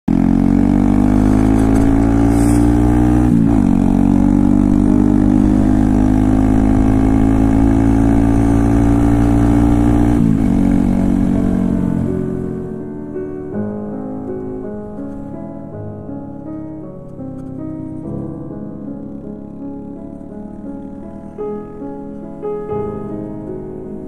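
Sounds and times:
motorcycle engine pulling: 0.1 - 12.3.

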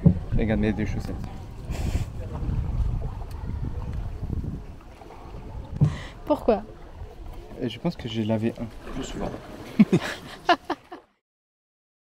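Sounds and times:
wind buffeting microphone: 0.0 - 8.0.

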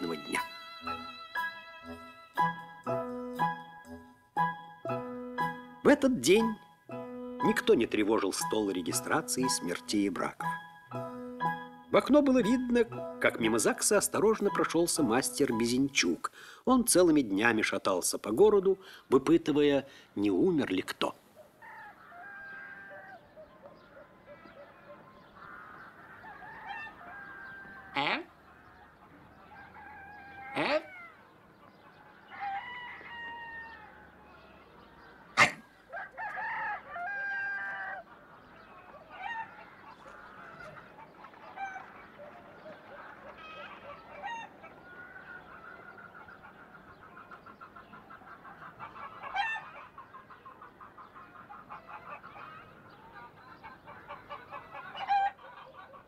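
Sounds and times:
rooster crowing: 21.6 - 23.3, 25.4 - 28.0, 29.5 - 31.2, 32.0 - 34.4, 35.8 - 38.1
chickens clucking: 21.6 - 56.0.

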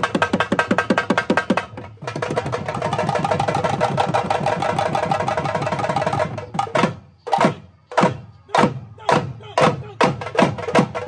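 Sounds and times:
drums beaten fast: 0.0 - 11.0.

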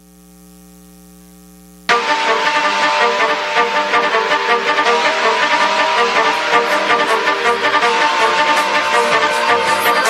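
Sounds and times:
mains hum from sound system: 0.0 - 2.1
music: 1.9 - 10.0.

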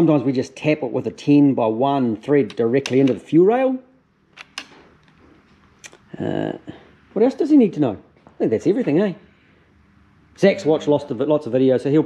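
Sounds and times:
faint room noise: 0.0 - 12.0.

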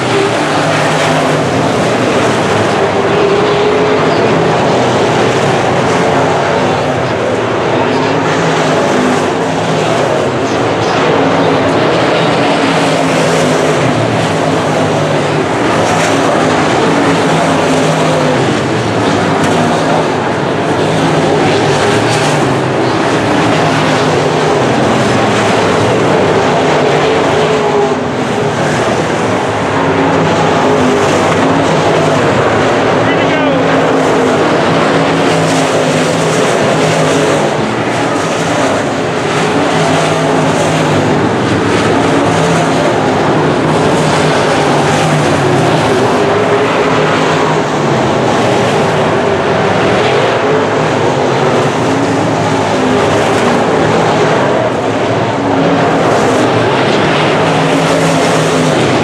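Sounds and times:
race car engines passing: 0.0 - 59.0.

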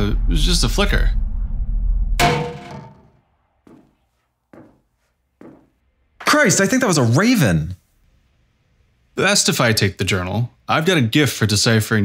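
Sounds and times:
heavy ringing thunk: 2.2 - 3.2.

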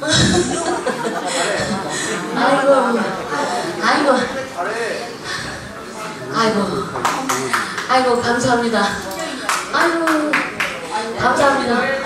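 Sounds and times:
sharp hand claps: 7.0 - 8.0, 9.4 - 10.9
woman talking: 7.9 - 10.5.

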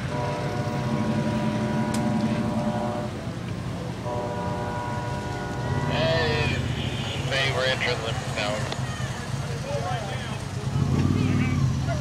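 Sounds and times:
train horn blasts: 0.0 - 3.3, 4.0 - 7.3.

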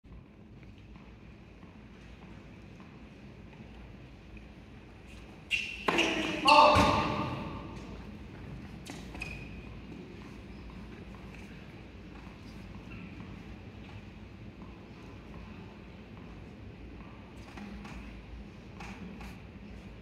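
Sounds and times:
murmur of hall: 2.5 - 20.0
tennis ball hit by racket: 5.9 - 8.0
player crying out: 6.2 - 7.6.

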